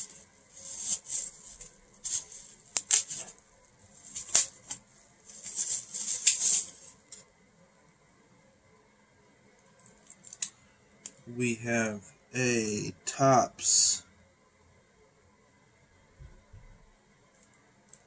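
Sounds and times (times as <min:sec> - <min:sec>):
plastic and bubble wrap crinkling: 0:00.0 - 0:07.3.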